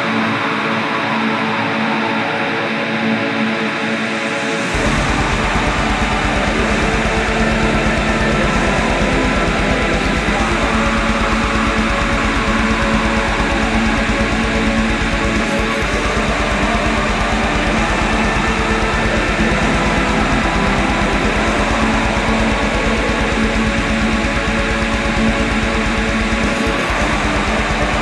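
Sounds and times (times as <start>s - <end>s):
distorted guitars: 0.0s - 28.0s
bass guitar: 3.8s - 28.0s
rapid kick-drum beat: 4.7s - 28.0s.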